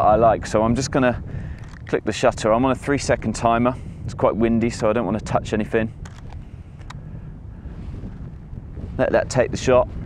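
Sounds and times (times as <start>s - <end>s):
wind buffeting microphone: 0.0s - 10.0s
faint clicks: 1.5s - 2.0s, 6.0s - 7.0s.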